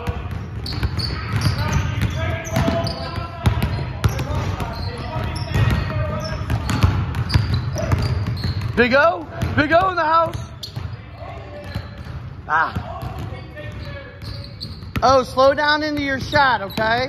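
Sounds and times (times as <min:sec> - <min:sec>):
basketballs bouncing on hardwood floor: 0:00.0 - 0:17.0
players' voices: 0:00.0 - 0:17.0.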